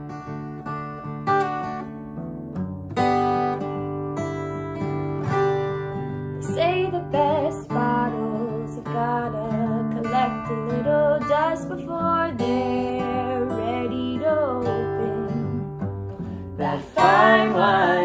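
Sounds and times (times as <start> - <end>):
acoustic guitar strumming: 0.0 - 18.0
woman singing: 6.4 - 15.8, 16.5 - 18.0.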